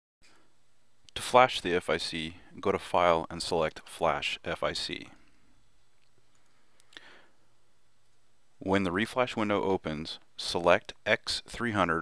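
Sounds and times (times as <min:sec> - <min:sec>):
low room hum: 0:00.2 - 0:12.0.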